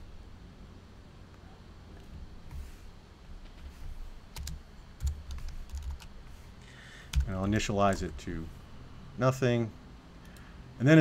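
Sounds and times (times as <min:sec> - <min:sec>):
light keyboard keystrokes: 0:04.4 - 0:06.1, 0:07.1 - 0:08.1.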